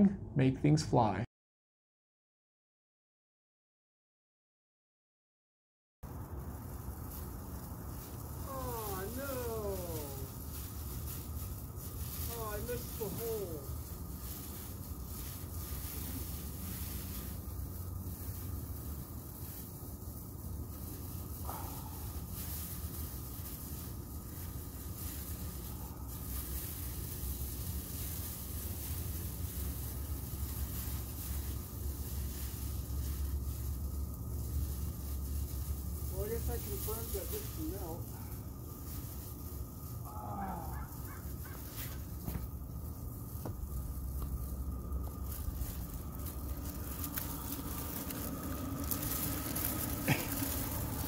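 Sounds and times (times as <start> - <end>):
foil film crinkling: 6.0 - 51.0
gas burner rumble and hiss: 6.1 - 51.0.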